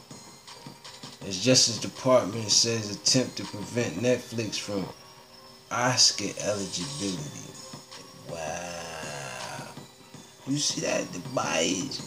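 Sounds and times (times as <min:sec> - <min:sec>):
man humming: 0:08.3 - 0:09.8.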